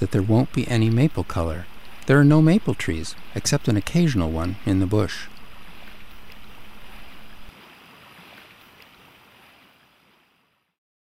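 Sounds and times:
light wind: 0.0 - 10.5
water lapping: 0.0 - 10.7.

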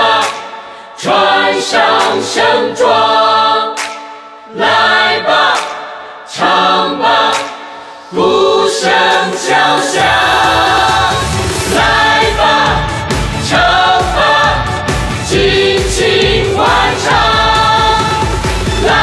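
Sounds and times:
person singing pop song: 0.0 - 19.0
steady drum beat: 9.1 - 19.0.

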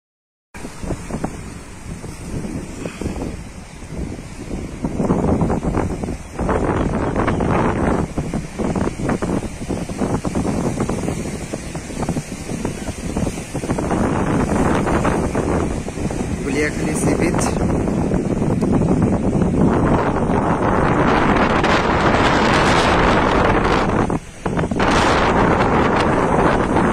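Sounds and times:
choppy sea waves: 0.6 - 26.9
wind buffeting microphone: 0.6 - 26.9.

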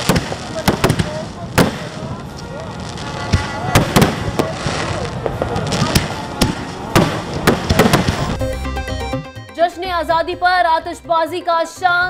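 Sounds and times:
fireworks bangs and crackles: 0.0 - 8.4
music: 7.2 - 12.0.

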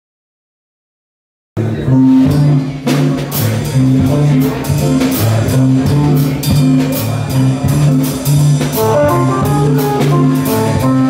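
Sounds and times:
bass line: 1.6 - 11.0
jazz band playing: 1.6 - 11.0.

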